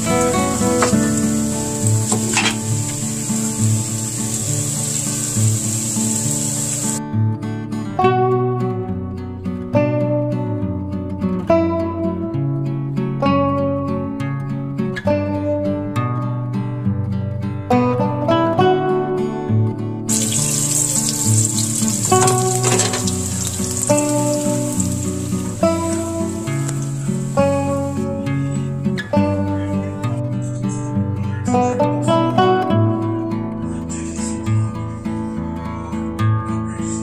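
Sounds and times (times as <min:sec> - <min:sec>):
food sizzling in oil: 0:00.0 - 0:07.0, 0:20.1 - 0:28.0
steady hiss: 0:00.0 - 0:07.0, 0:20.1 - 0:28.1
acoustic guitar music: 0:00.0 - 0:37.0.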